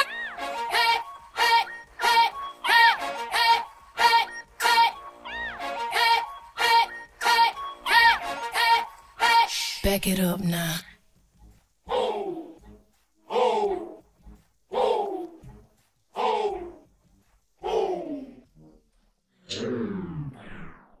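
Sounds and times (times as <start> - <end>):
person giving falling cries: 0.0 - 9.5.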